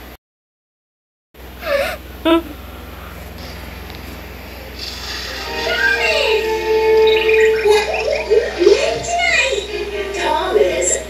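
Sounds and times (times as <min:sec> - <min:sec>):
cartoon music: 0:04.9 - 0:11.0.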